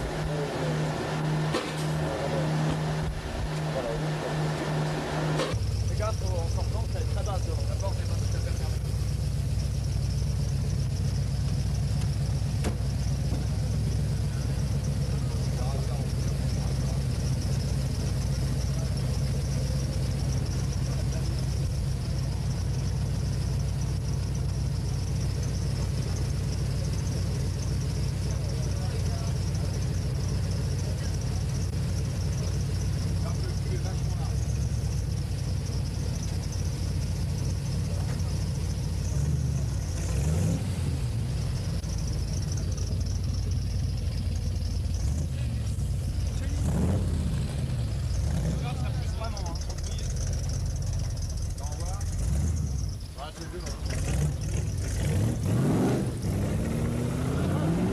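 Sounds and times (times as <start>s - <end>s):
car engine running: 0.0s - 57.9s.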